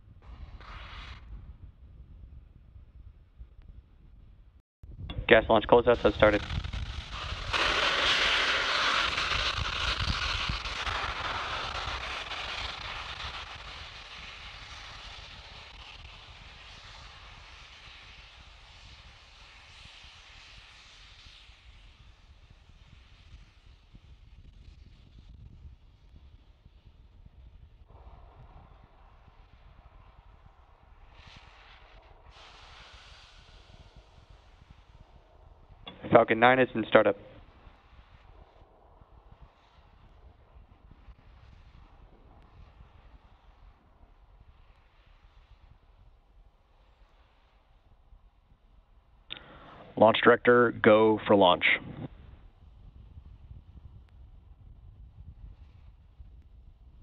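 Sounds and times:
rocket gas venting hiss: 0.3 - 1.3, 5.4 - 25.3, 27.9 - 50.1.

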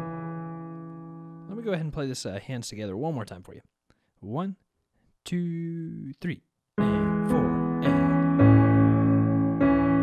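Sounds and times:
piano chord ringing: 0.0 - 1.6, 6.8 - 10.0
man's voice: 1.5 - 3.6, 5.3 - 9.4.

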